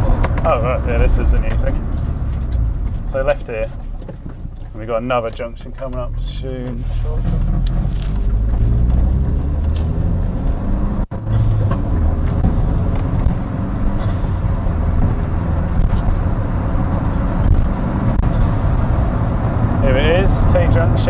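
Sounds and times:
car engine drone: 0.0s - 21.0s
tyre and road noise: 0.0s - 21.0s.

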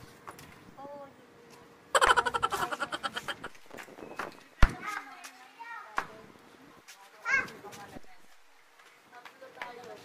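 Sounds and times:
girls' pulsing vocal burst: 2.0s - 3.6s.

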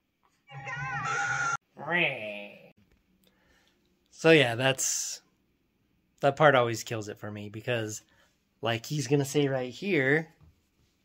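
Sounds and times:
shrill scream-like cry: 0.5s - 1.6s.

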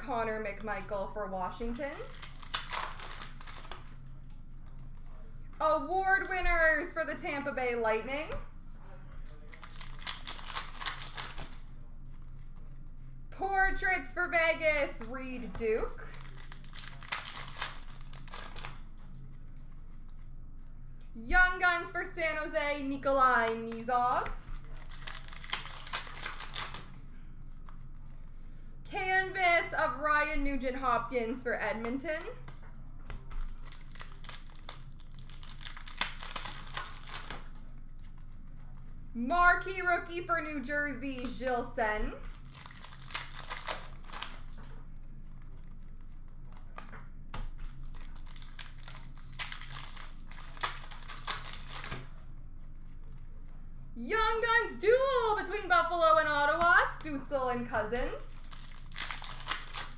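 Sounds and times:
foil wrappers crinkling: 0.5s - 5.6s, 9.1s - 13.2s, 14.9s - 20.7s, 23.5s - 28.4s, 31.8s - 39.2s, 41.2s - 53.6s, 56.8s - 59.9s
cards shuffling: 1.9s - 5.6s, 9.2s - 13.1s, 14.9s - 20.3s, 23.3s - 28.4s, 31.8s - 39.1s, 41.2s - 53.5s, 58.0s - 59.9s.

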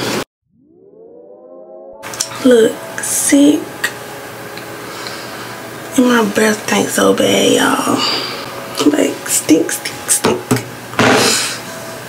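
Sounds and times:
siren-like tone sweeping up: 0.4s - 5.9s.

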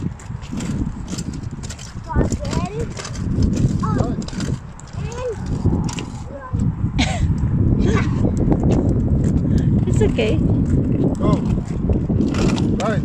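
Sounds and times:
kick scooter rolling: 0.0s - 7.4s, 8.0s - 13.0s
footsteps on tarmac: 0.0s - 7.5s, 8.3s - 13.0s
low rumble: 0.0s - 13.0s.

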